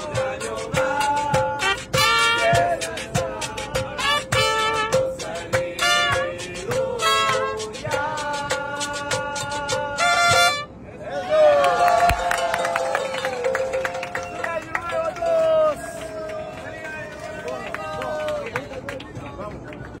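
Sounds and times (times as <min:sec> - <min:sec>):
people singing and shouting: 0:00.0 - 0:10.6.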